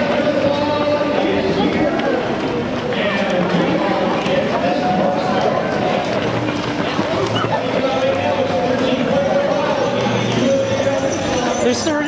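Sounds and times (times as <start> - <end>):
many overlapping voices: 0.0 - 12.0
runners' footfalls on pavement: 0.0 - 12.0.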